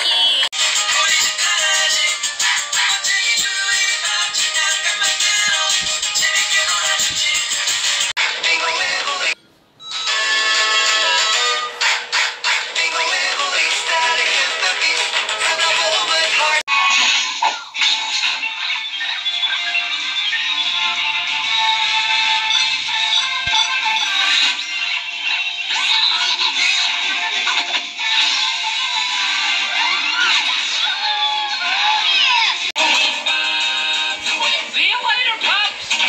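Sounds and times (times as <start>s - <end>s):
character voices singing: 18.0s - 36.0s.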